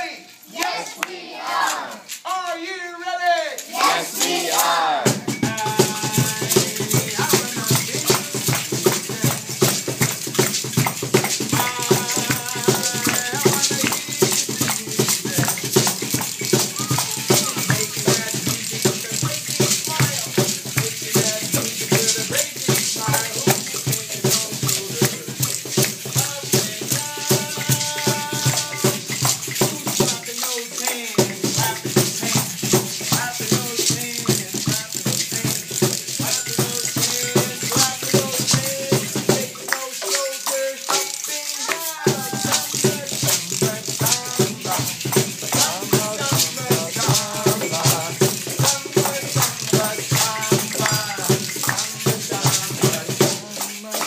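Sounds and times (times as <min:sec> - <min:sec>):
shakers and maracas rattling: 0:00.0 - 0:54.0
children's voices: 0:00.5 - 0:02.1, 0:16.7 - 0:17.7, 0:41.3 - 0:42.4.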